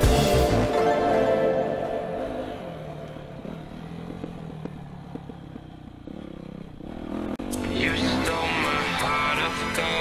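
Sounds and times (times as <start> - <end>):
dirt bike engine running: 1.7 - 10.0
bike knocks and rattles: 3.9 - 6.9.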